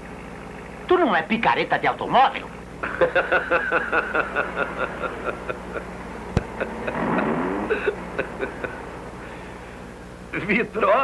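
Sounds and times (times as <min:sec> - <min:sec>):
steady low hum: 0:00.0 - 0:11.0
man chuckling quietly: 0:02.8 - 0:08.9.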